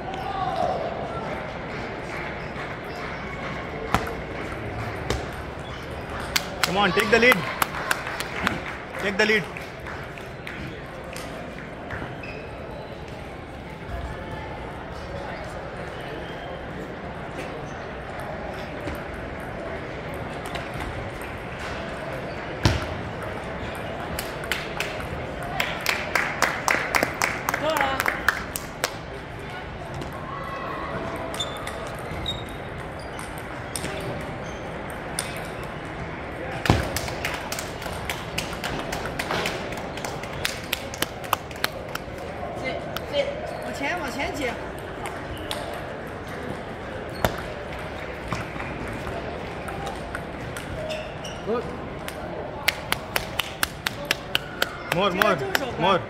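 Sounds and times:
table tennis balls clicking: 0:31.1 - 0:36.0, 0:36.6 - 0:42.2, 0:44.3 - 0:50.9.

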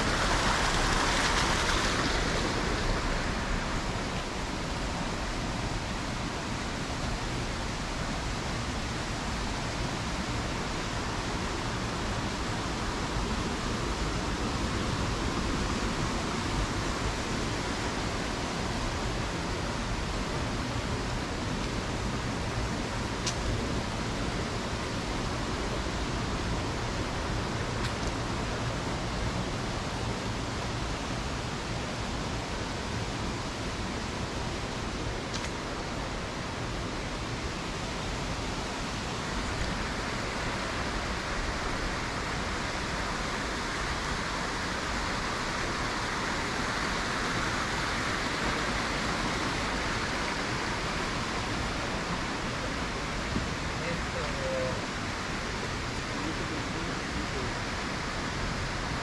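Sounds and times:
steady rushing noise: 0:00.0 - 0:59.0.

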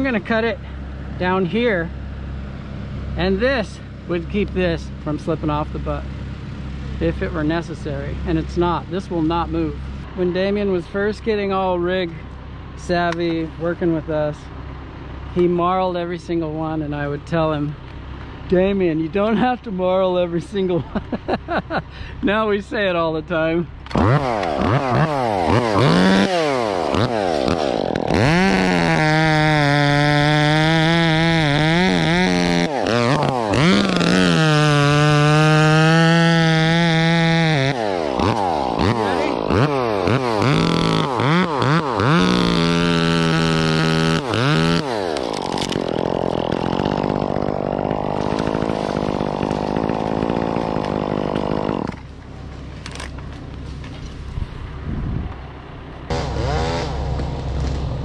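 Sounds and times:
chainsaw cutting through limb: 0:23.9 - 0:52.2, 0:56.1 - 0:58.0.

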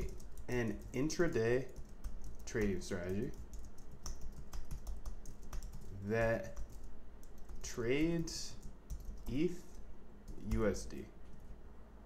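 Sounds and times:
keyboard typing clicks: 0:00.0 - 0:05.9
low steady hum: 0:00.0 - 0:12.0.

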